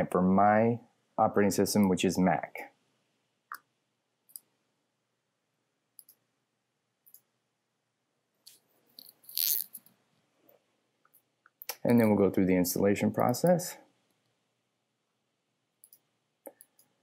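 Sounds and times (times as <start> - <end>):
computer mouse clicks: 6.0 - 6.2, 15.8 - 17.0.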